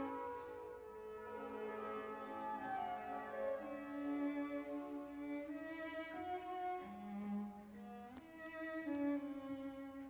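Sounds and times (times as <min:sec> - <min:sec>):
slow bowed string orchestral music: 0:00.0 - 0:10.0.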